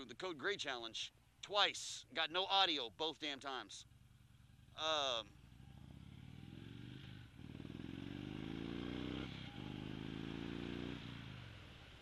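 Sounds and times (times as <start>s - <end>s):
motorcycle accelerating: 3.8s - 12.0s.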